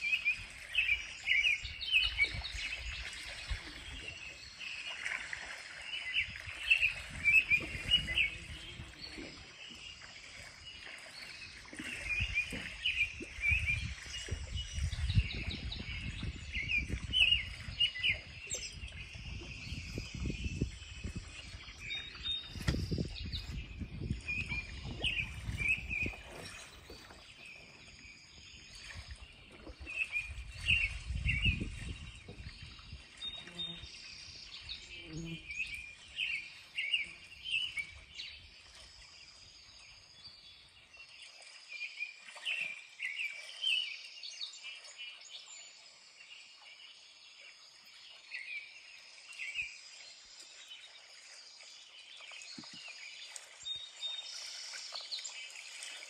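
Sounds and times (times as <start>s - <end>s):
songbird chirping: 5.8s - 56.0s.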